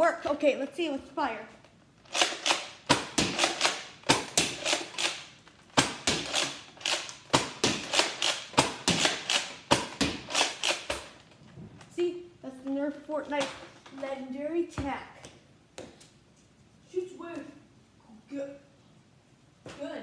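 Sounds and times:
toy dart blaster firing: 0:02.1 - 0:11.1.

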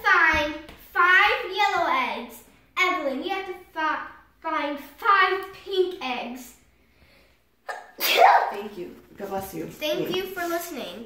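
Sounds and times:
girl sneezing: 0:07.6 - 0:08.6
girl's voice: 0:09.6 - 0:11.0.

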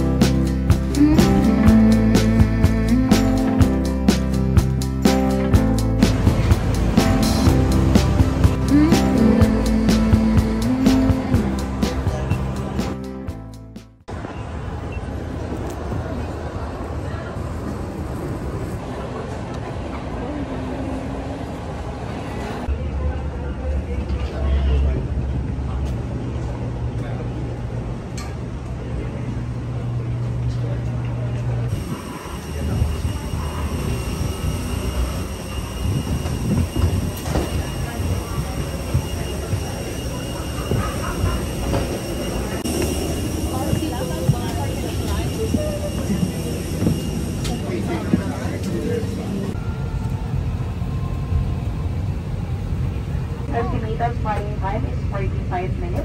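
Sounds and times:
murmur of passengers' voices: 0:06.2 - 0:13.2, 0:14.1 - 0:56.0.

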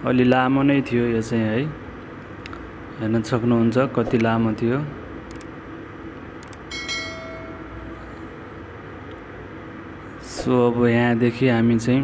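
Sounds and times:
metro station hum: 0:00.0 - 0:12.0
bell-like chime: 0:06.7 - 0:08.1.

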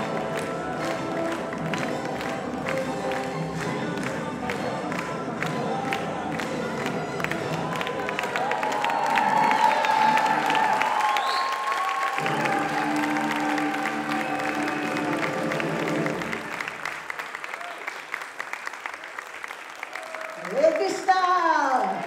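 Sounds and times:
music with held notes: 0:00.0 - 0:08.3, 0:12.2 - 0:16.8
audience applauding: 0:00.0 - 0:22.0
cheers and shouts: 0:07.6 - 0:16.6, 0:19.8 - 0:22.0.

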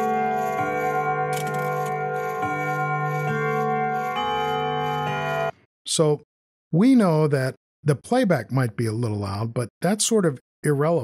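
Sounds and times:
clock carillon chime: 0:00.0 - 0:05.5.

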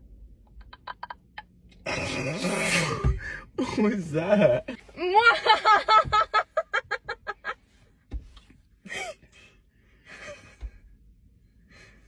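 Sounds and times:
person laughing: 0:00.6 - 0:01.4.

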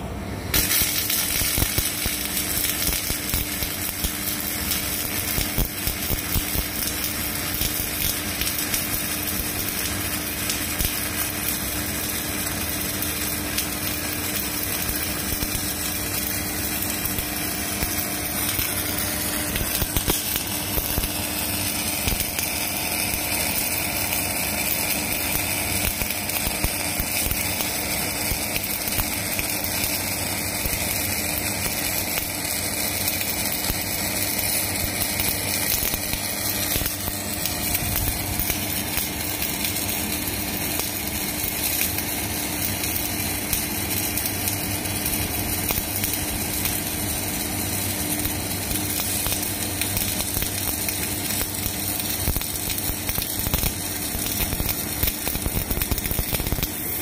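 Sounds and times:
welding arc crackling hiss: 0:00.0 - 0:57.0.

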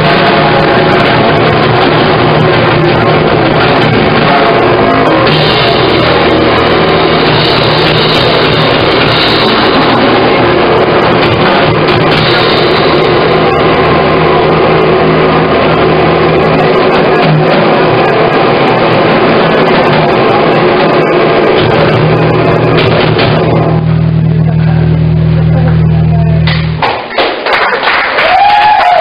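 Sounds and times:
held low bass note: 0:00.0 - 0:26.8
post-punk band playing live: 0:00.0 - 0:27.5.

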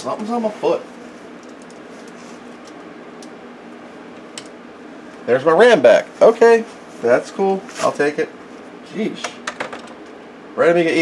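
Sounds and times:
computer cooling fans humming: 0:00.0 - 0:11.0.

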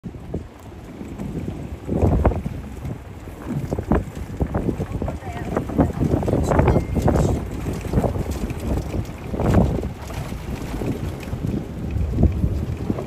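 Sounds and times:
wind buffeting microphone: 0:00.0 - 0:13.0
buggy ride knocks: 0:00.2 - 0:13.0.

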